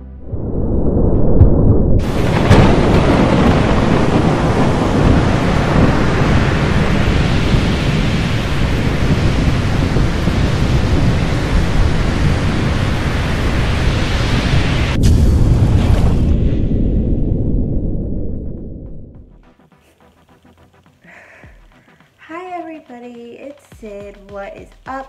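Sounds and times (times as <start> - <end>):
thunder rumbling: 0.2 - 19.7
heavy rain roaring: 2.0 - 16.3.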